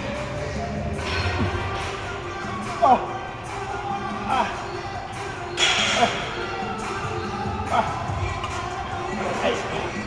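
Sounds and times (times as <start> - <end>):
background music: 0.0 - 10.0
man grunting: 2.8 - 3.2, 4.2 - 4.6.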